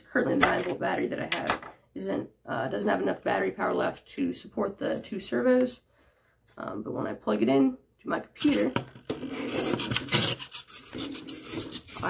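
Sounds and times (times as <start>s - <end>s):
cardboard tube scraping on desk: 8.5s - 12.0s.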